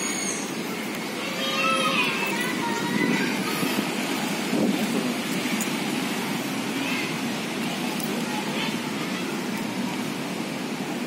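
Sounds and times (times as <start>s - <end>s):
distant voices: 0.0s - 11.0s
motorcycle traffic: 0.0s - 11.0s.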